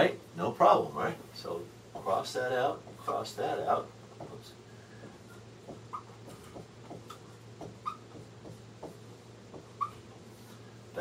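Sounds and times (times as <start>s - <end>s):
low room hum: 0.0s - 11.0s
marker writing on whiteboard: 1.2s - 11.0s
marker squeak: 5.3s - 6.4s, 7.6s - 8.3s, 9.6s - 10.2s.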